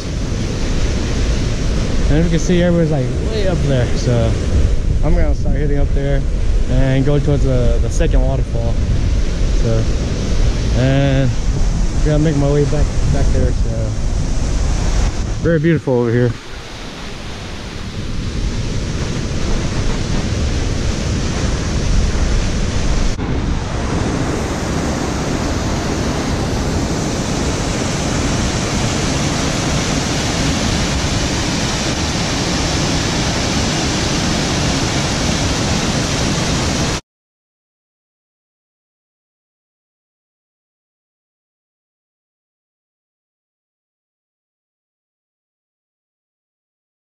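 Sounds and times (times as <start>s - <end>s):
waterfall rushing: 0.0s - 5.9s, 9.4s - 37.0s.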